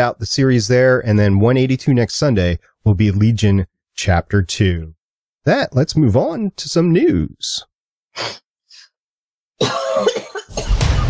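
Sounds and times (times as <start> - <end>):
short cough: 9.6 - 10.8
music with booming hits: 10.5 - 11.0.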